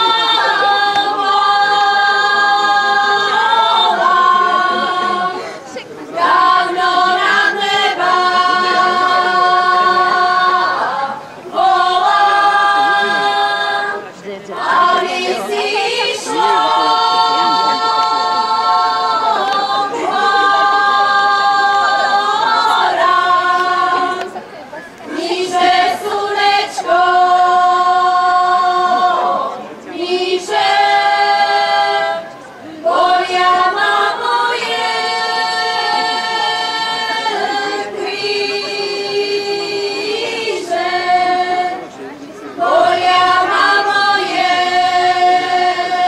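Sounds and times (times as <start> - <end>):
women's choir singing a cappella: 0.0 - 46.0.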